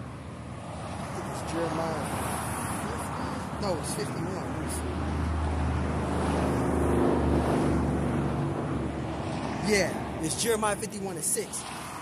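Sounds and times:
low rumble of traffic: 0:00.0 - 0:12.0
wind: 0:00.0 - 0:12.0
vehicle engine passing: 0:00.7 - 0:12.0.

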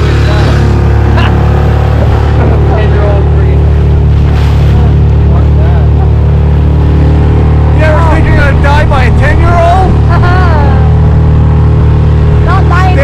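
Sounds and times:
outboard motor running: 0:00.0 - 0:13.0.

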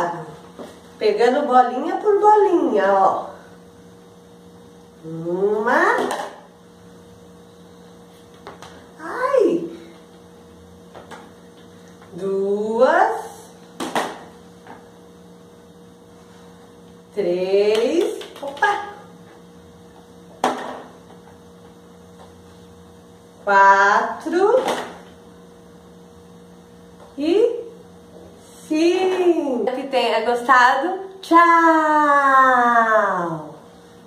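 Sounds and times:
low electrical hum: 0:00.0 - 0:34.0.

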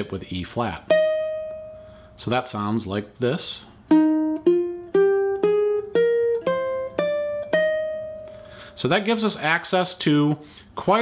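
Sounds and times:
ukulele plucking a scale: 0:03.9 - 0:08.3.

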